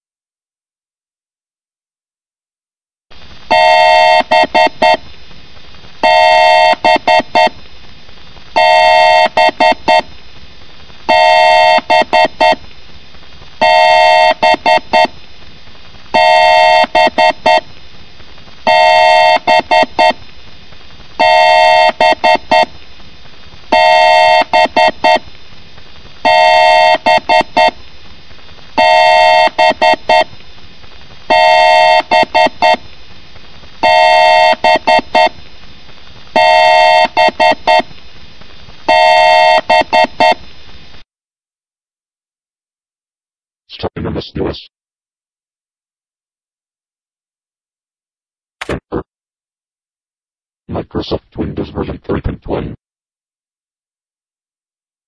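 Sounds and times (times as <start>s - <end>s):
two-tone electronic beeps: 3.5s - 5.0s, 6.0s - 7.5s, 11.1s - 12.6s, 13.6s - 15.1s, 18.7s - 20.2s, 21.2s - 22.7s, 23.8s - 25.2s, 26.3s - 27.7s, 28.8s - 30.3s, 31.3s - 32.8s, 36.4s - 37.8s, 38.9s - 40.4s.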